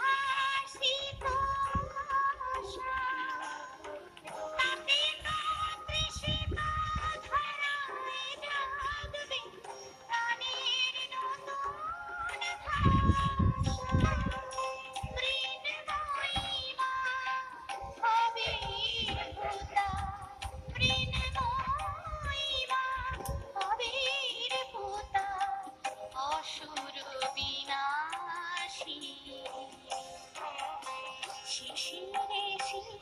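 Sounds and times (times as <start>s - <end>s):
woman singing with accompaniment: 0.0s - 33.0s.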